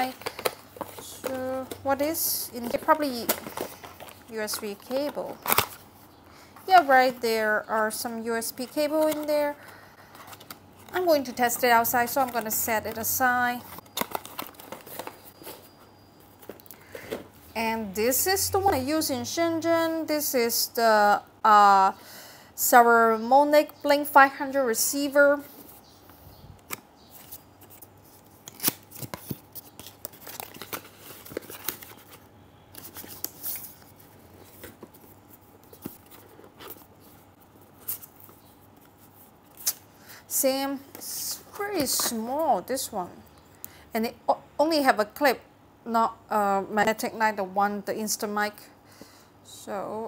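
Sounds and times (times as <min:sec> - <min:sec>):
cardboard boxes being handled: 0:00.0 - 0:05.7, 0:10.2 - 0:15.8
packaging rustling: 0:00.0 - 0:06.0, 0:08.4 - 0:17.3, 0:26.6 - 0:39.8.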